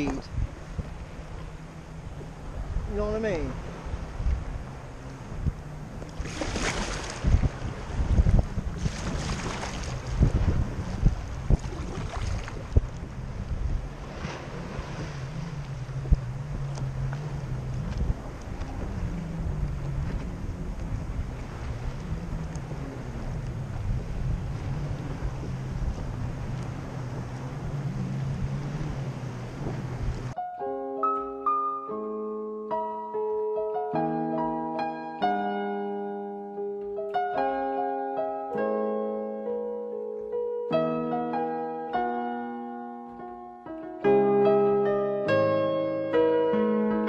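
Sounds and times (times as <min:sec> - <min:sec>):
jet ski engines droning: 0:00.0 - 0:30.4
wind on microphone: 0:00.0 - 0:30.4
piano music: 0:15.3 - 0:47.0.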